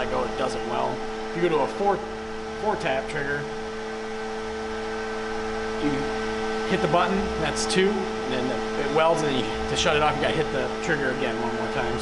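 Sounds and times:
welder electrical hum: 0:00.0 - 0:12.0
person speaking: 0:06.7 - 0:12.0.

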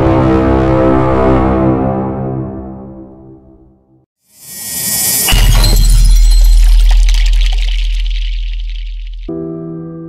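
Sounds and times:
deep boom: 0:04.9 - 0:09.3.

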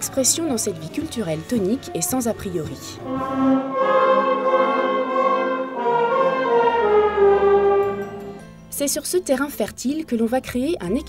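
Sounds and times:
wind band playing chords: 0:03.0 - 0:08.4.

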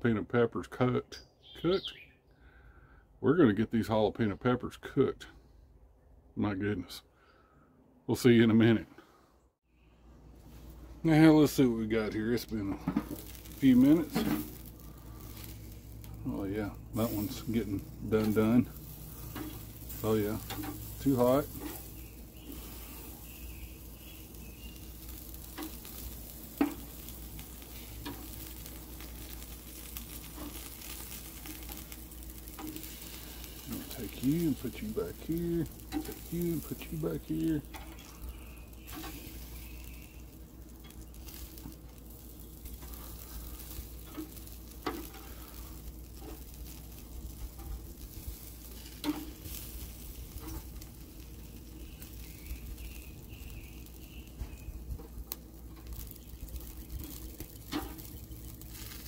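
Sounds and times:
food sizzling over charcoal: 0:10.3 - 0:59.0.

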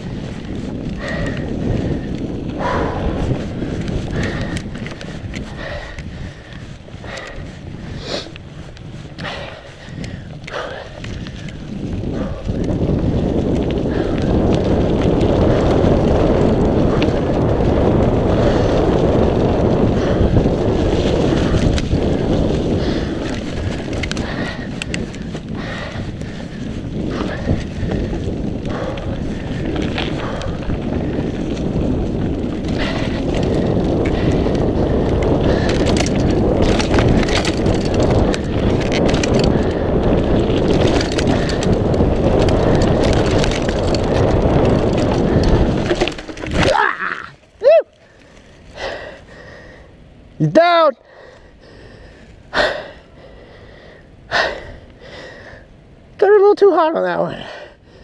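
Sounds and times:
bike rattling and knocking: 0:00.0 - 0:49.7
tyres rushing on dirt and leaves: 0:00.0 - 0:52.5
wind on microphone: 0:00.0 - 0:58.0.

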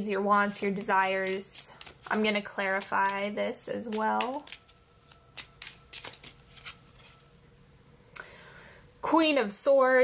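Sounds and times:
playing cards snapping and rustling: 0:01.2 - 0:03.2, 0:03.9 - 0:07.1.

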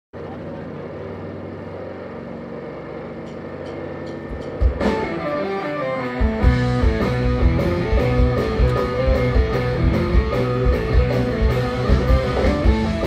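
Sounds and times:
droning chord: 0:00.4 - 0:13.0
live rock band playing: 0:04.1 - 0:13.0.

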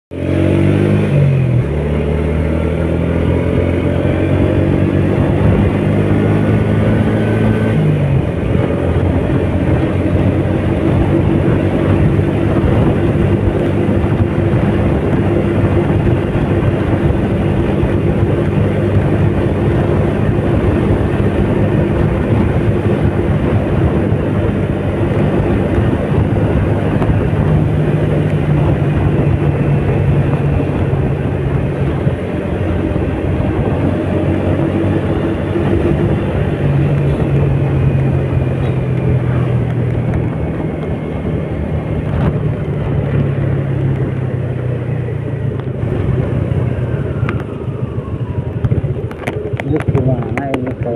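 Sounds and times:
motorcycle engine running: 0:00.1 - 0:50.9
wind and road noise: 0:00.1 - 0:50.9.

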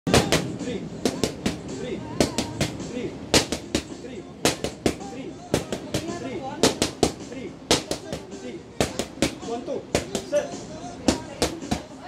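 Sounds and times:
boxing gloves smacking mitts: 0:01.1 - 0:02.8, 0:03.4 - 0:03.9, 0:04.5 - 0:09.4.

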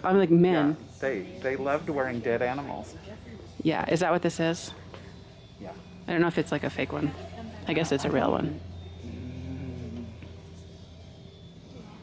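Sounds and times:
steady low hum: 0:00.8 - 0:12.0
faint pitched tone: 0:07.7 - 0:12.0.

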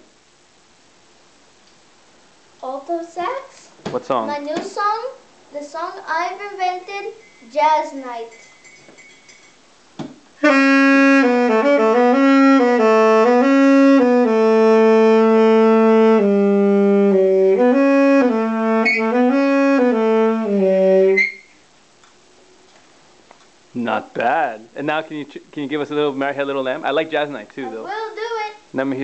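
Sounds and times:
alto saxophone solo: 0:10.4 - 0:21.6.

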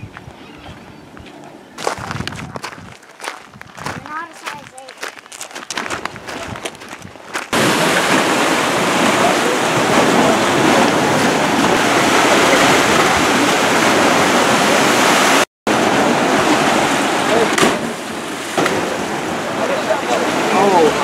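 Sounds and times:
wind: 0:00.0 - 0:21.0
footsteps crunching on gravel: 0:01.2 - 0:07.6
surf rushing: 0:06.2 - 0:21.0.

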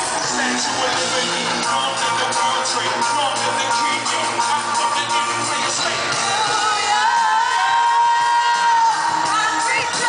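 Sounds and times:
band playing live: 0:00.0 - 0:10.0
crowd cheering: 0:00.0 - 0:10.0.

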